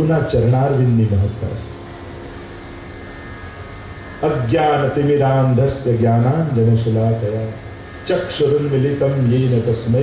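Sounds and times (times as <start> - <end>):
steady hum and hiss: 0.0 - 10.0.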